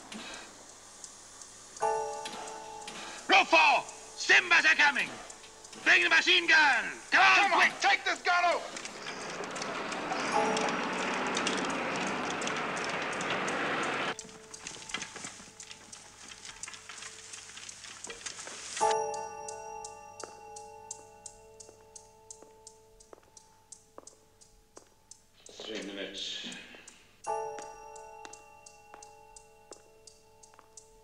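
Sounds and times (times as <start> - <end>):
tense music with sustained chords: 0.0 - 17.8
steady ticking: 0.0 - 31.0.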